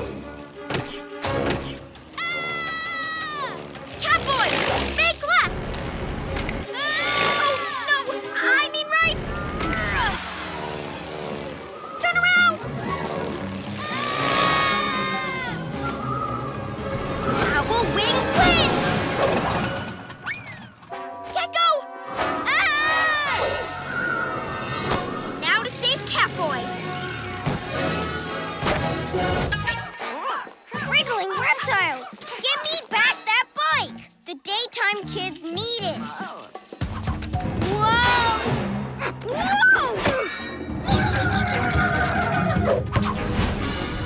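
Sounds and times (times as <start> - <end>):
background music: 0.0 - 44.0.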